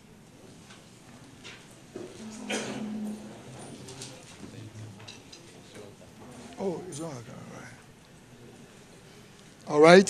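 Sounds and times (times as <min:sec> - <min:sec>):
low murmuring voices: 0:01.3 - 0:09.8.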